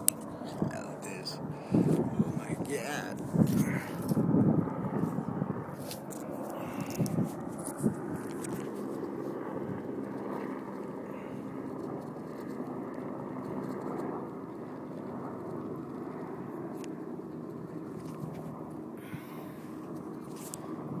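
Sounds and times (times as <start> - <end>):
distant engine drone: 0.0 - 21.0.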